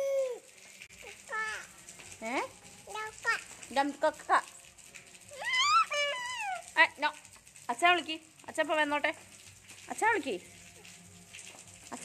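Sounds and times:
toddler babbling: 0:00.0 - 0:00.4, 0:01.0 - 0:01.7, 0:02.9 - 0:03.4, 0:05.3 - 0:06.7
toddler squealing: 0:05.3 - 0:06.7.

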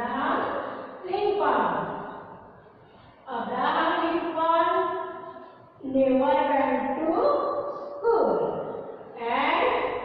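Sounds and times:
woman speaking: 0:00.0 - 0:02.1, 0:03.3 - 0:05.2, 0:05.8 - 0:10.0.

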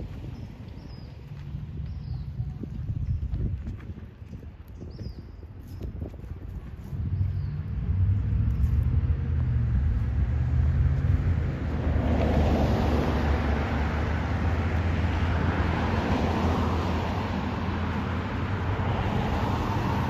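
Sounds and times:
road noise rush: 0:00.0 - 0:20.0
vehicle engine humming: 0:06.3 - 0:20.0.

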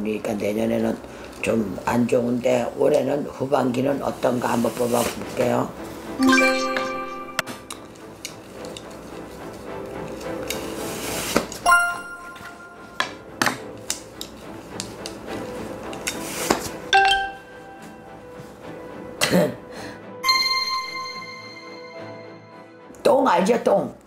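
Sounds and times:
soft background music: 0:00.0 - 0:24.0
bright chime stings: 0:06.2 - 0:07.8, 0:11.7 - 0:13.2, 0:20.2 - 0:22.7.

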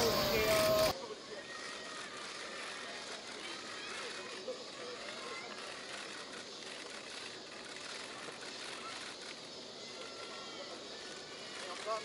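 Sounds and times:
faint outdoor hiss: 0:00.0 - 0:12.0.

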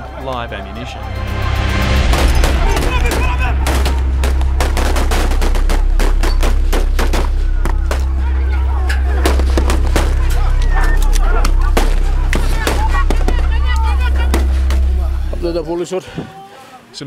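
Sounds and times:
people shouting: 0:01.3 - 0:15.3
rapid gunshots: 0:02.1 - 0:08.2.

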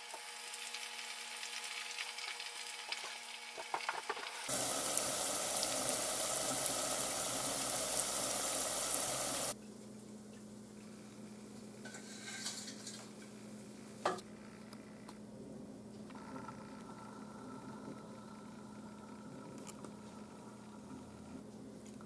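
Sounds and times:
food sizzling in hot oil: 0:00.0 - 0:09.6.

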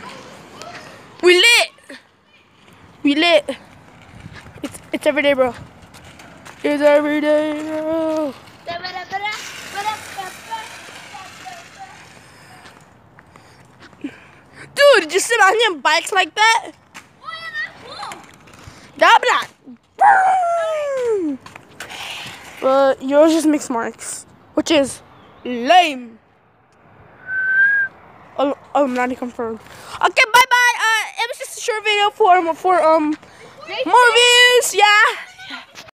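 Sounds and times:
distant children calling out: 0:00.0 - 0:03.8, 0:17.2 - 0:22.7
street ambience: 0:00.0 - 0:35.9
person whistling a short note: 0:27.2 - 0:27.9.

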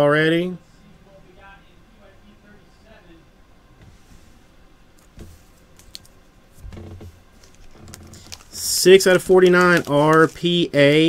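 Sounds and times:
man speaking: 0:00.0 - 0:03.4, 0:08.6 - 0:11.0
trading card rustling: 0:05.0 - 0:06.2, 0:07.3 - 0:11.0.

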